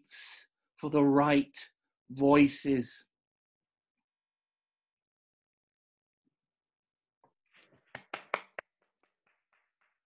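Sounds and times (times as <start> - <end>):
hand clapping: 7.6 - 10.0.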